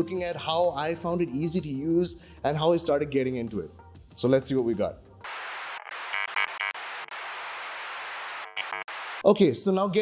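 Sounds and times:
static-like hiss: 5.2s - 9.4s
rapid stuttering glitch pulses: 5.3s - 9.2s.

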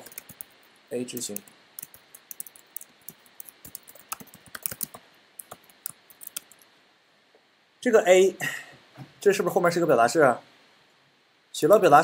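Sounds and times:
computer keyboard typing: 0.0s - 6.7s.

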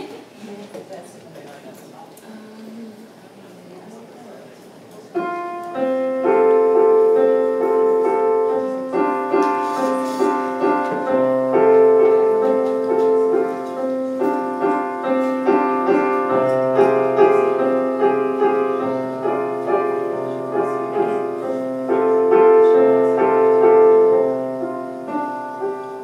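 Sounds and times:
piano playing slow chords: 5.2s - 26.0s.

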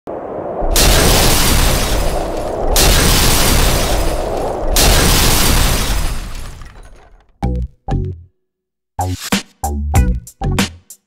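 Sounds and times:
glass shattering effect: 0.6s - 7.3s.

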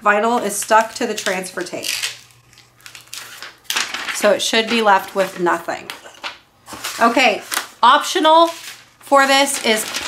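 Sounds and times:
backing paper peeling and crackling: 0.5s - 5.4s, 7.0s - 10.0s.

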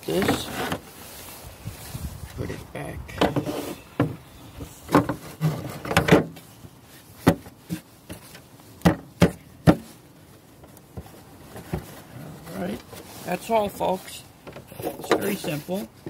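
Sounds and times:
plastic rubbing: 0.0s - 1.4s.

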